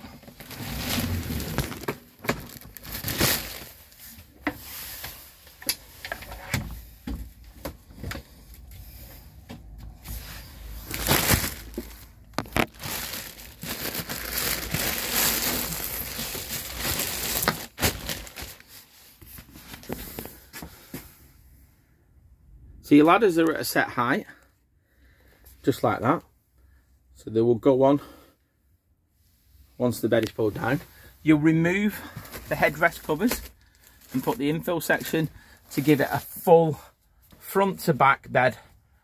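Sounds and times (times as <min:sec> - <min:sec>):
handling noise rustling: 0:00.0 - 0:21.2.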